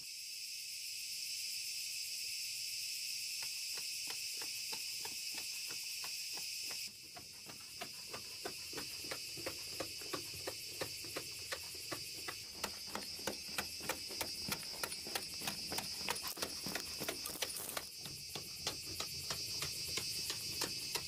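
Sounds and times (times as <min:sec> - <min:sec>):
crickets chirring: 0:00.0 - 0:21.0
regular ticking: 0:03.4 - 0:21.0.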